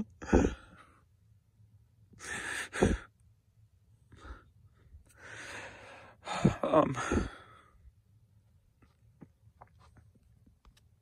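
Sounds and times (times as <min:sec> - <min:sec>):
man sighing heavily: 0:05.2 - 0:07.7.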